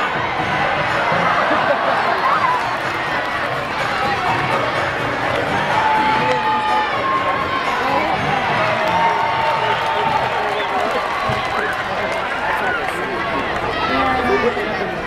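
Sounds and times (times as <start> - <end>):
crowd talking and shouting: 0.0 - 15.0.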